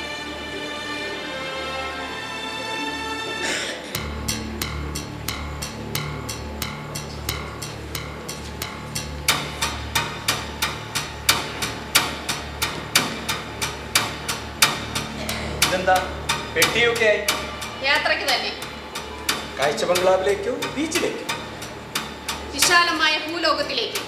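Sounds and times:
rhythmic tapping beat: 3.8s - 24.0s.

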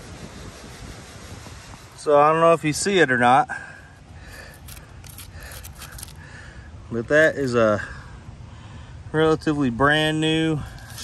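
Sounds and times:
glove scraping on bark: 4.3s - 6.2s, 10.6s - 11.0s.

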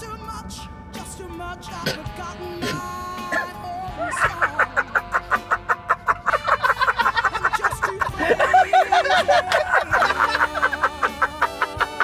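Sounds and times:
music: 0.0s - 12.0s
man laughing loudly: 3.3s - 12.0s.

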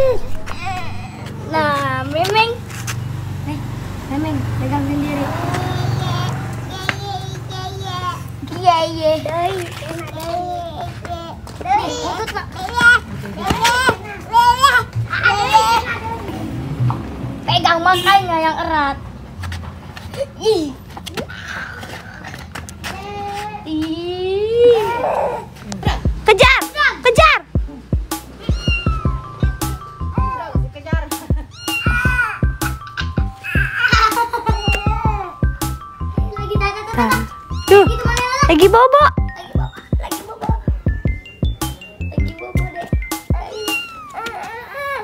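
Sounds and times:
toddler's drawn-out vocal sound: 21.2s - 23.8s, 24.4s - 25.6s, 43.4s - 45.0s
background music: 25.9s - 44.2s
cat meowing: 28.4s - 29.5s, 31.5s - 32.4s, 33.4s - 35.2s, 37.5s - 38.0s, 43.5s - 44.4s.

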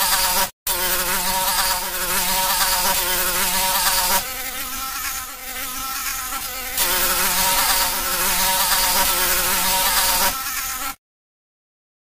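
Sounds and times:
fly buzzing: 0.0s - 11.0s.

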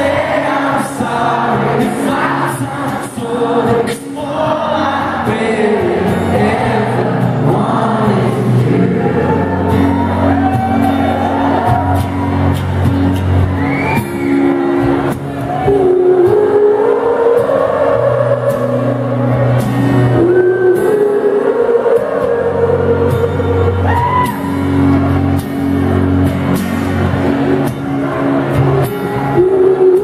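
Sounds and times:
acoustic guitar: 0.0s - 30.0s
crowd singing along: 0.0s - 30.0s.

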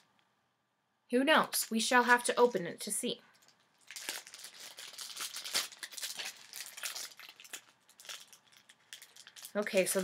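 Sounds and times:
packaging crinkling and tearing: 3.4s - 10.0s.

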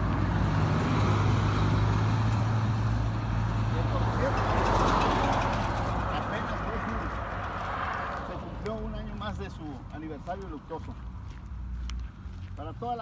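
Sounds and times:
car driving by: 0.0s - 9.9s.

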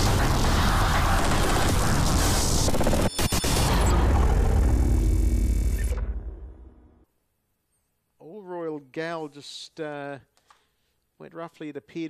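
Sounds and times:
rushing noise: 0.0s - 5.7s.

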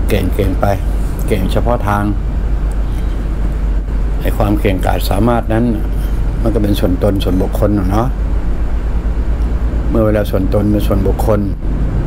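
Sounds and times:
person speaking: 0.0s - 3.2s, 4.1s - 8.2s, 9.8s - 11.6s
low rumbling background noise: 0.0s - 12.0s.

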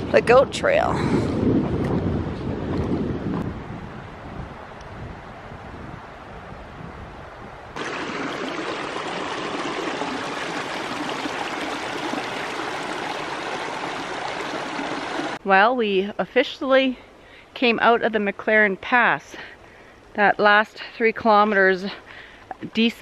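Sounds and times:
wind rumble on microphone: 0.0s - 15.4s
creek running over rocks: 7.8s - 15.4s.

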